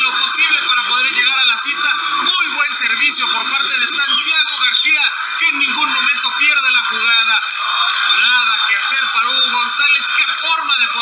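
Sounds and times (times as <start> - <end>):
man talking on radio: 0.0 - 11.0.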